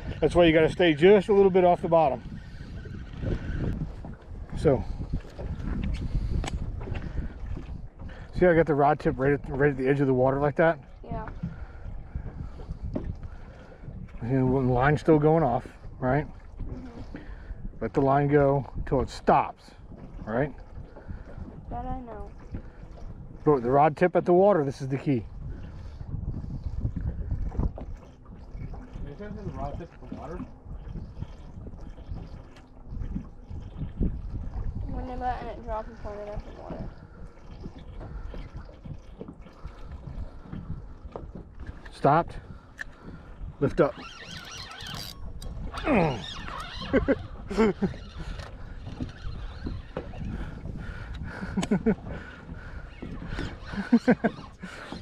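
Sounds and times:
water moving around hull: 0.0 - 55.0
wind buffeting microphone: 0.0 - 55.0
laughter: 46.9 - 48.0, 51.4 - 52.0, 53.8 - 54.4.

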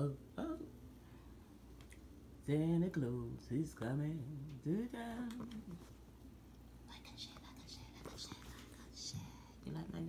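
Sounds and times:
person whispering: 6.9 - 9.7.

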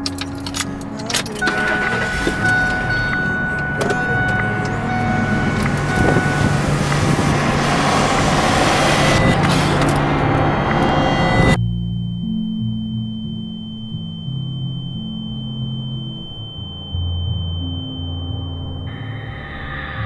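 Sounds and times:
ignition key click: 0.0 - 7.6
car engine running: 0.0 - 11.6.

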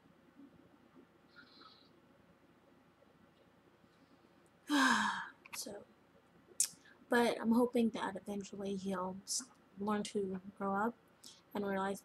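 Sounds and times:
woman sighing heavily: 4.7 - 5.4.

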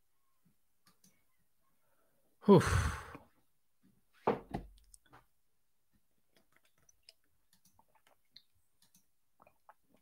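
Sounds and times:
man sighing: 2.4 - 3.3.

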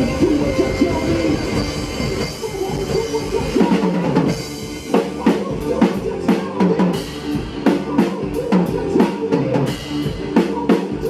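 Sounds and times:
drum kit played hard: 0.0 - 11.0
recorded rock song: 0.0 - 11.0.

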